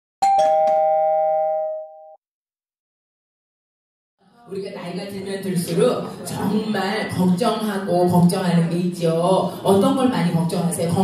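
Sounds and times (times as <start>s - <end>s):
two-note ding-dong chime: 0.2s - 2.2s.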